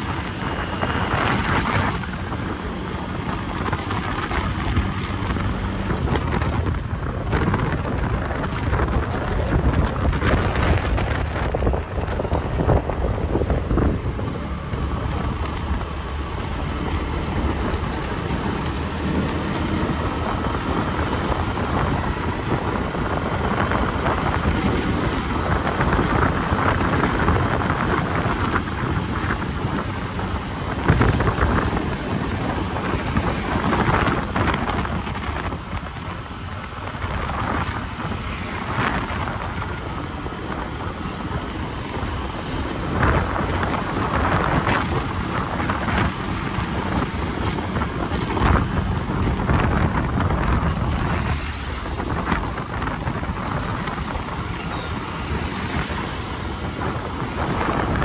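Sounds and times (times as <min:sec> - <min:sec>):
motorcycle engine: 0:00.0 - 0:58.0
road noise: 0:00.0 - 0:58.0
wind buffeting microphone: 0:00.0 - 0:58.0.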